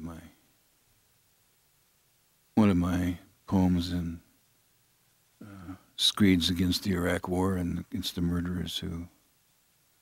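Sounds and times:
man speaking: 0.0 - 0.4, 2.6 - 4.3, 5.4 - 9.2.

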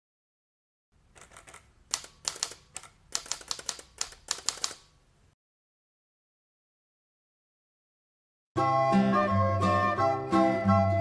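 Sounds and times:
typing clicks: 1.1 - 4.9.

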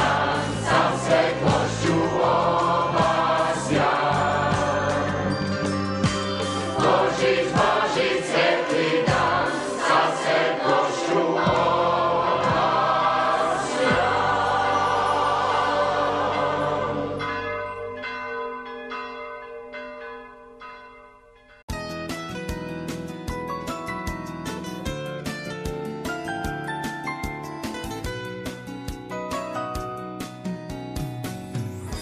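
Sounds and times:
choir singing religious song: 0.0 - 5.4, 6.7 - 17.8
ringing chime notes: 4.1 - 7.4, 14.2 - 21.7.

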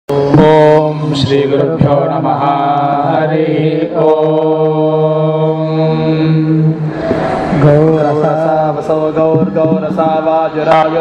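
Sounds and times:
chanted recitation: 0.1 - 11.0
chanting held om: 0.1 - 11.0.

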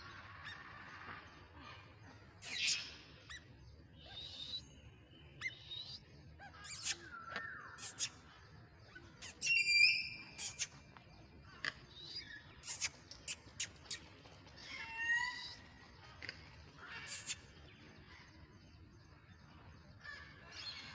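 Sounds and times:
birds chirping: 0.0 - 20.9.

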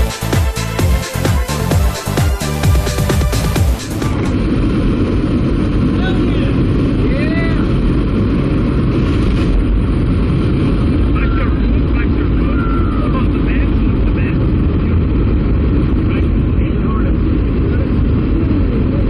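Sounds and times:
plane engine noise: 0.0 - 19.0
rushing wind: 0.0 - 19.0.

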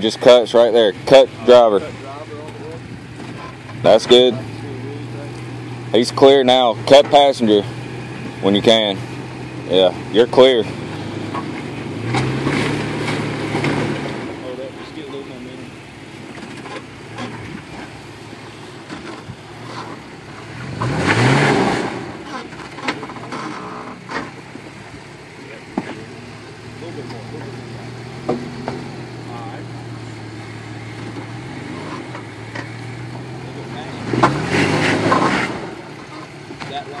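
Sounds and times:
engine idling and revving: 0.0 - 37.0.

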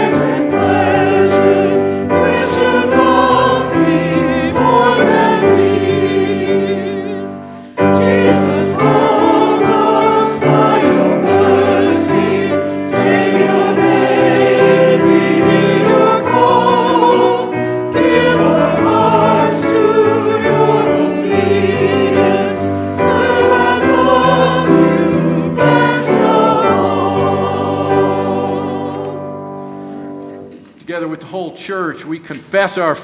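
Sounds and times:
congregation and choir singing: 0.0 - 30.7
piano accompaniment: 0.0 - 32.2.

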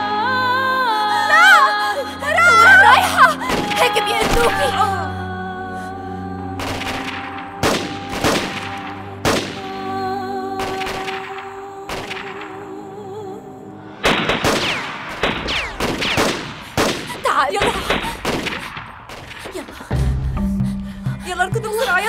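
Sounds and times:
dramatic background music: 0.0 - 22.0
single gunshots cracking: 6.6 - 9.7, 14.0 - 19.2
rapid automatic gunfire: 14.1 - 19.5.

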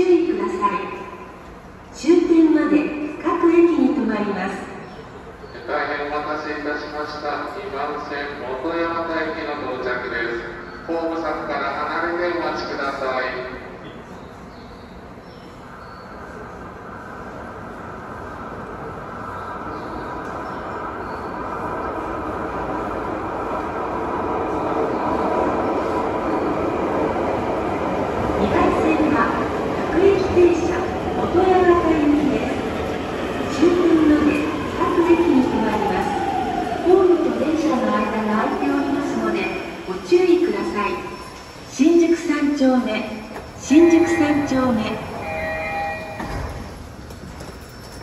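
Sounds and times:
subway train running with whine: 0.0 - 48.0.

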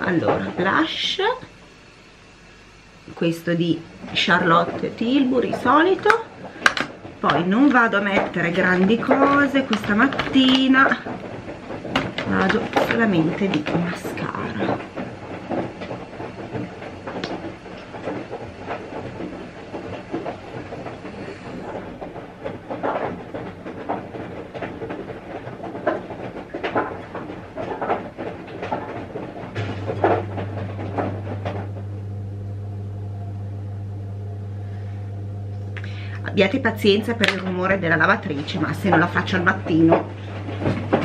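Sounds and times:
steady low hum: 0.0 - 41.0
washing machine rumbling and clattering: 0.0 - 41.0.

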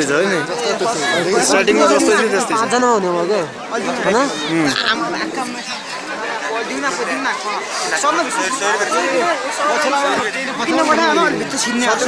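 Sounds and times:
overlapping chatter: 0.0 - 12.0.

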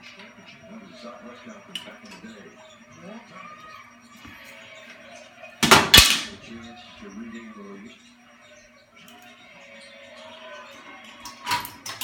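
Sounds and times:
faint television sound: 0.0 - 12.0
loud bangs: 5.6 - 6.4.

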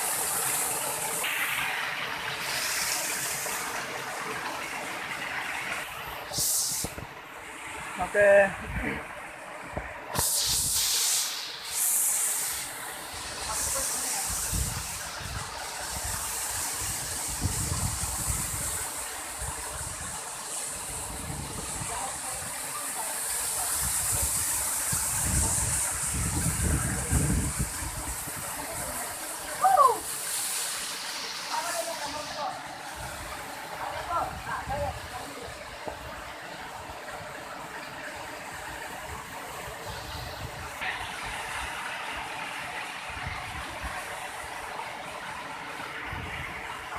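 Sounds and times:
waterfall rushing over rocks: 0.0 - 46.9.

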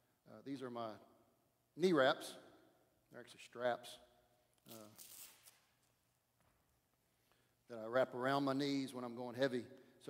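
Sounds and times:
strap rustling: 4.6 - 6.1.

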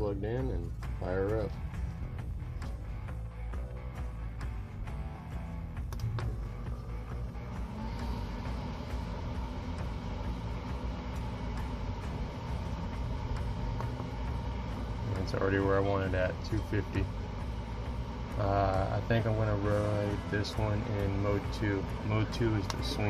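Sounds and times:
background music: 0.0 - 23.0
smoker fan hum and whine: 0.0 - 23.0.

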